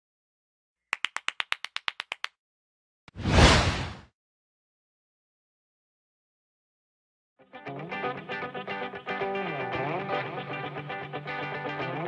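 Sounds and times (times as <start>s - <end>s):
rapid hand clapping: 0.9s - 2.4s.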